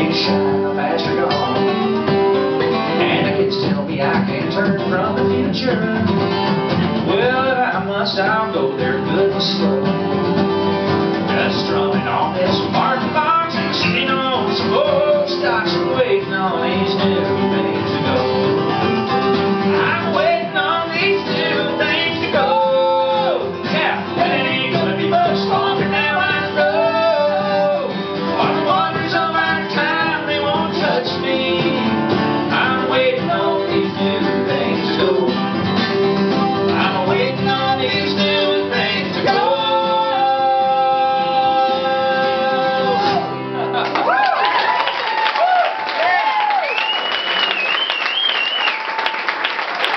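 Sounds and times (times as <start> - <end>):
man singing: 0.0 - 1.8, 2.7 - 10.2, 11.2 - 35.8, 36.4 - 43.7
acoustic guitar: 0.0 - 49.9.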